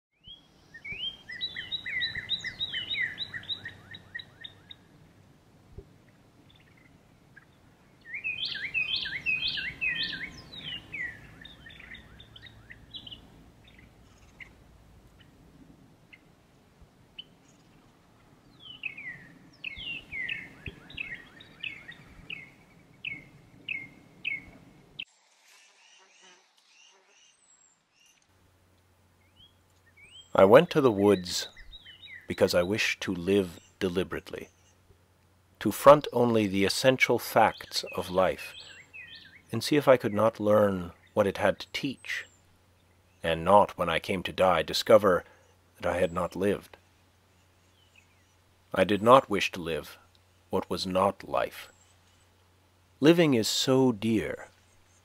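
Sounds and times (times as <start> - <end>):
faint outdoor background: 0.1 - 55.0
songbird chirping: 0.1 - 55.0.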